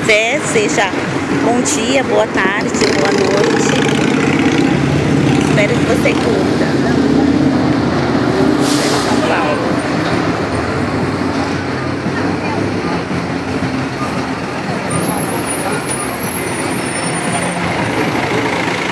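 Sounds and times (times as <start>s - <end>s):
heavy traffic: 0.0s - 18.9s
air brake hiss: 8.6s - 9.2s.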